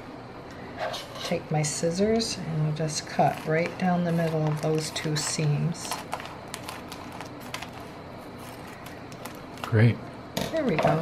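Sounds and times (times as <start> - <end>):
plastic crinkling: 3.3 - 9.9.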